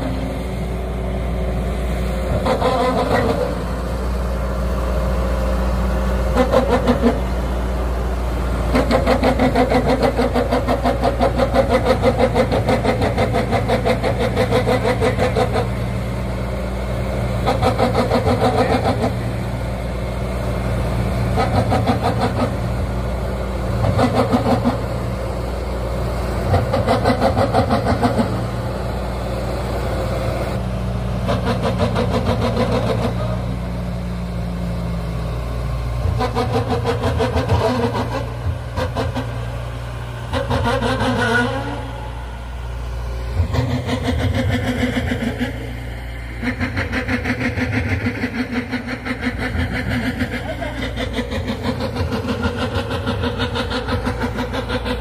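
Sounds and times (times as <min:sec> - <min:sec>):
road roller diesel engine running: 0:00.0 - 0:55.0.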